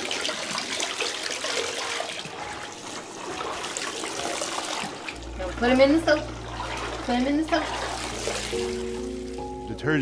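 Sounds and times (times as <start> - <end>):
water pouring from bathtub tap: 0.0 - 9.4.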